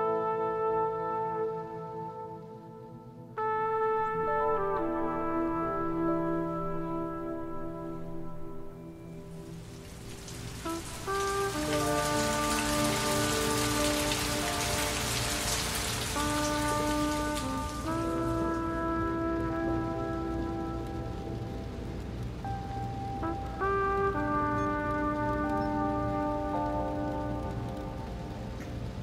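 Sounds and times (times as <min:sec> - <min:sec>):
held musical chords: 0:00.0 - 0:29.0
steady rain: 0:00.0 - 0:29.0.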